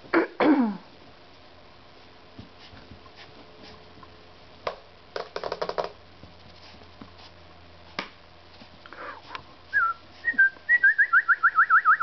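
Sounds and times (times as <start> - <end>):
person whistling a trill: 9.7 - 12.0.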